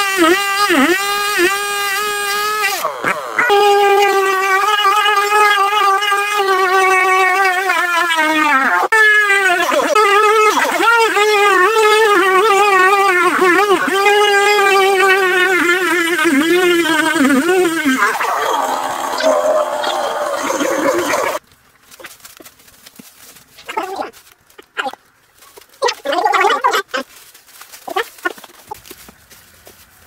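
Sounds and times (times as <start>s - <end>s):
chainsaw cutting into tree trunk: 0.0s - 2.9s
voice-like sounds: 8.2s - 21.4s.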